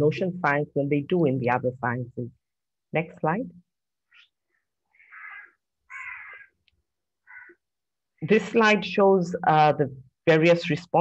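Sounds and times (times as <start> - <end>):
faint animal calls: 4.9 - 6.6, 7.2 - 7.6.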